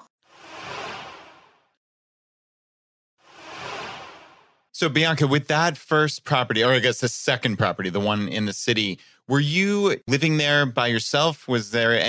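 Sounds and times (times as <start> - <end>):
airy whoosh: 3.2 - 4.5.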